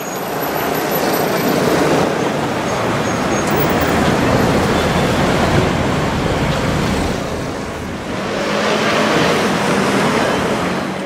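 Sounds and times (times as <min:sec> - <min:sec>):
city street traffic rumble: 0:00.0 - 0:11.0.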